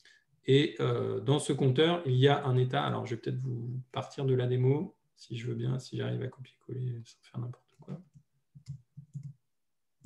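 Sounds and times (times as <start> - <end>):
faint keyboard clicks: 7.8 - 9.4.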